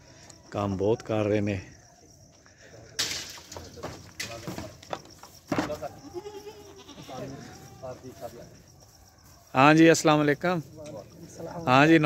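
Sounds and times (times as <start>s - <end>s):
goat bleating: 5.9s - 7.9s.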